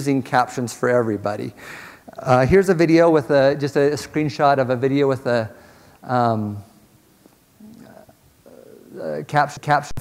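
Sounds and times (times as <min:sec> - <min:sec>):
man murmuring faintly: 0:07.6 - 0:09.2.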